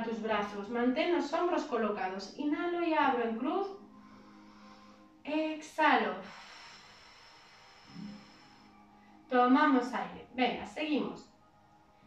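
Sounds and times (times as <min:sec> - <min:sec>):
woman breathing out: 0:03.9 - 0:05.2, 0:06.2 - 0:09.2.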